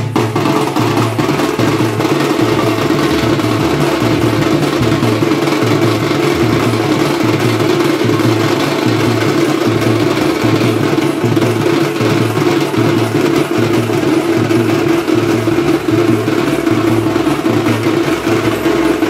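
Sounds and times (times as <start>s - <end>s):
barrel drums played with sticks: 0.0s - 19.0s.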